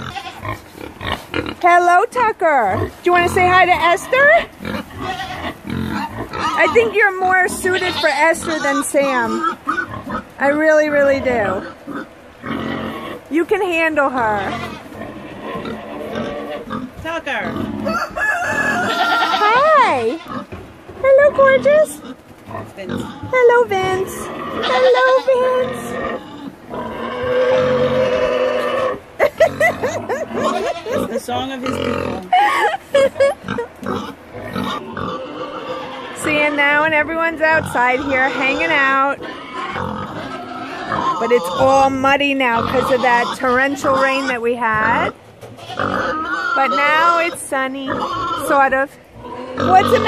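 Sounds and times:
pig grunting: 2.6 - 13.2, 14.1 - 20.5, 21.2 - 36.8, 37.4 - 50.0.

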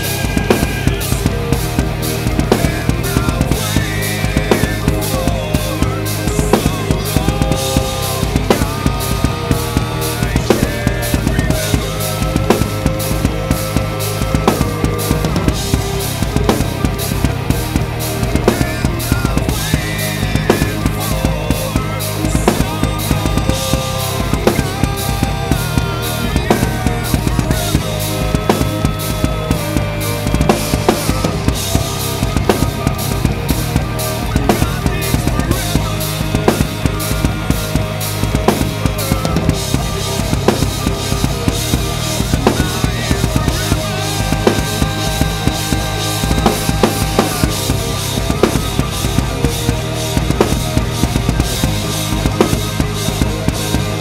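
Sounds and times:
acoustic drum kit played fast: 0.0 - 54.0
recorded song with bass: 0.0 - 54.0.

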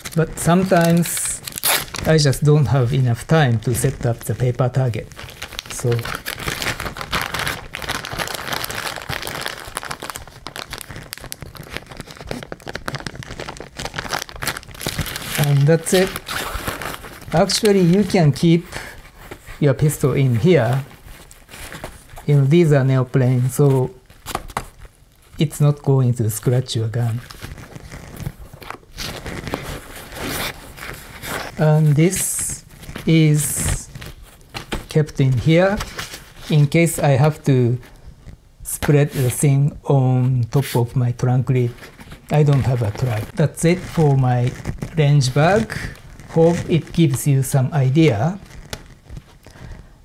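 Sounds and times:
plastic bag crinkling: 0.0 - 25.4, 41.4 - 50.0.

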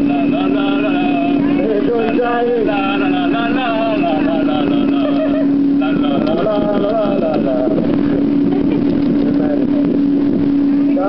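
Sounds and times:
people calling out: 0.0 - 7.4
motorboat engine droning: 0.0 - 11.0.

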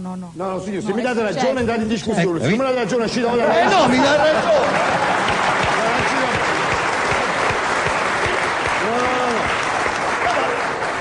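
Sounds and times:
audience applauding: 3.5 - 11.0
voices over clapping: 4.2 - 11.0.

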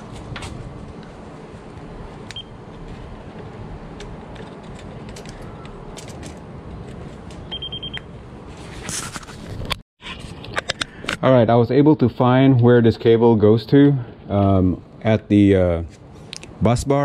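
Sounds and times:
steady background noise: 0.0 - 17.0
voltage tester beeping: 2.3 - 2.6, 7.5 - 8.1.

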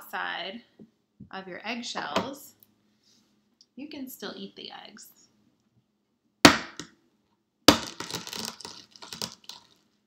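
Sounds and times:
egg shell knocking: 7.7 - 9.6
egg shell crackling: 7.7 - 9.8.

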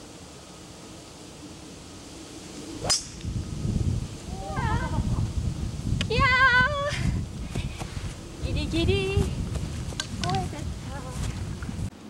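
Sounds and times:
golf club striking ball: 2.8 - 3.3.

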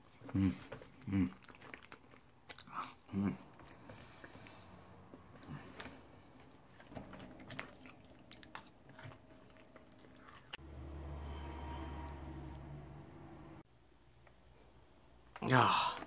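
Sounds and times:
chewing: 0.0 - 10.6.

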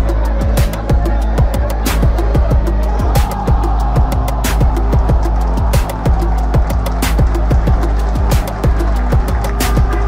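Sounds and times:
deep bass: 0.0 - 10.0
electronic dance music: 0.0 - 10.0
kick drum beat: 0.0 - 10.0.

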